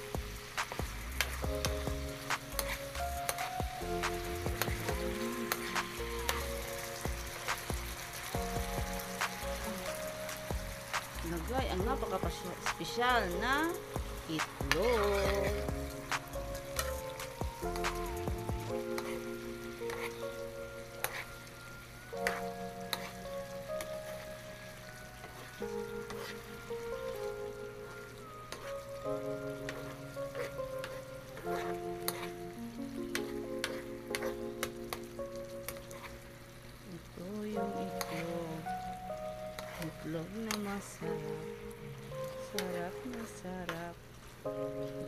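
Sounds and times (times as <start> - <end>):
background music of sustained chords: 0.0 - 45.0
stew sizzling in a wok: 0.0 - 45.0.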